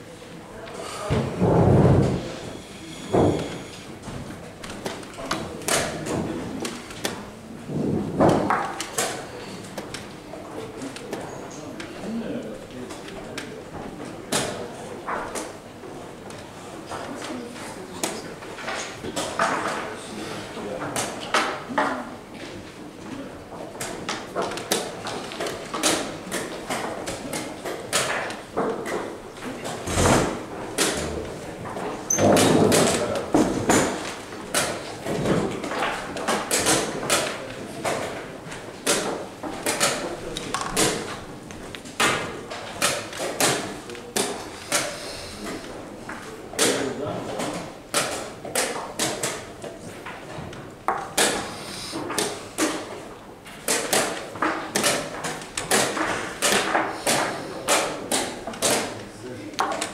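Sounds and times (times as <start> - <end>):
indistinct background voices: 0.0 - 23.5.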